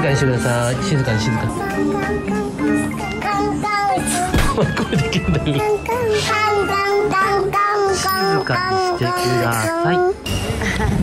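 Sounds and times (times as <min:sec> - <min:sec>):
young child singing: 0:00.6 - 0:10.2.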